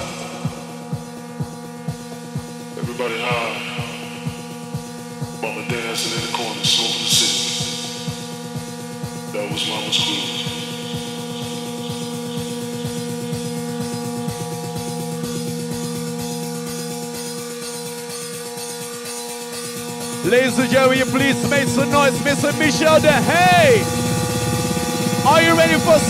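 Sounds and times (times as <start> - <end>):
techno music with synth chord: 0.0 - 26.0.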